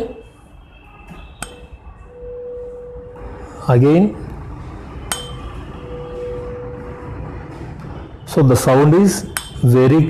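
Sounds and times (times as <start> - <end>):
tuning fork clink: 5.1 - 5.5.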